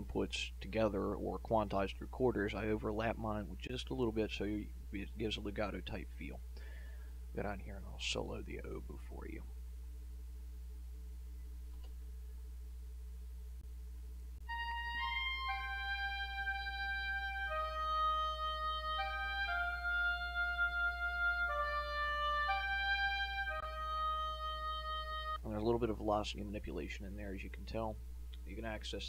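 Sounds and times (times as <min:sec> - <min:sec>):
low electrical hum: 0:00.0 - 0:29.0
oboe solo melody: 0:14.4 - 0:25.4.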